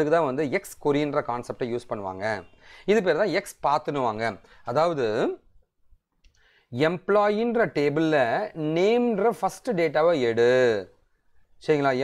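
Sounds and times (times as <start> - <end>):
man speaking: 0.0 - 5.6, 6.7 - 12.0.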